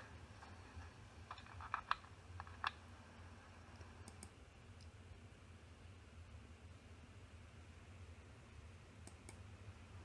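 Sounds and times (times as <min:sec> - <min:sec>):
faint low hum: 0:00.0 - 0:10.0
computer clicks: 0:04.0 - 0:04.9.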